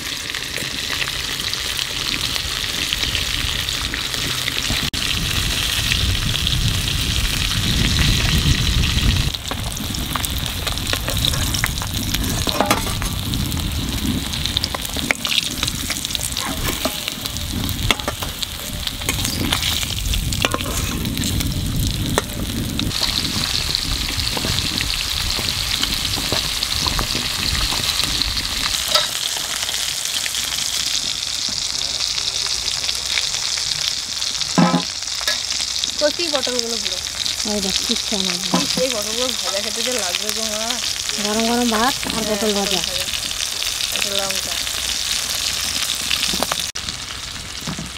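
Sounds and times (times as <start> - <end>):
food sizzling in hot oil: 0.0 - 47.9.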